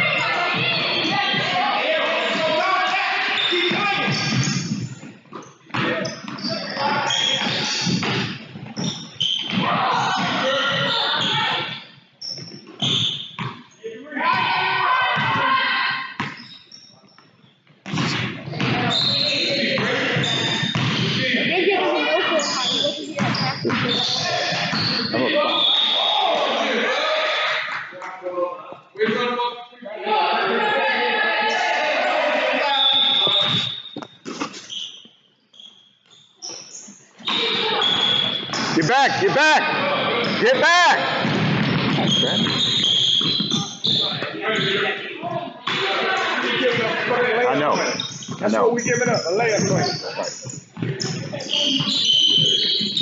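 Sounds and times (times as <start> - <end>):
voices calling out: 0.0 - 5.1, 37.2 - 53.0
basketball bouncing on wooden floor: 41.2 - 43.8.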